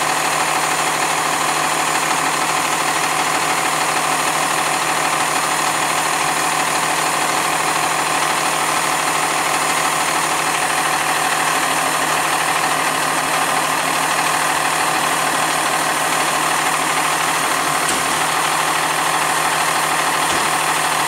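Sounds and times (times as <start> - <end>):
diesel engine idling: 0.0 - 21.0.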